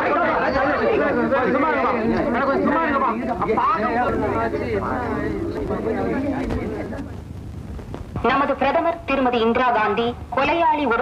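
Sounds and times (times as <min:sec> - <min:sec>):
babble of overlapping voices: 0:00.0 - 0:11.0.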